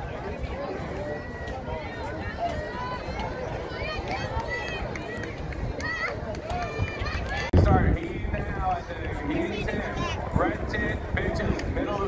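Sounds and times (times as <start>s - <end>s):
chatter of many people: 0.0s - 12.0s.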